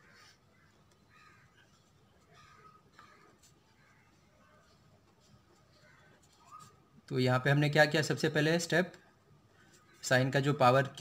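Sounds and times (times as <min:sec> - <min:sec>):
faint bird call: 0:00.0 - 0:04.8.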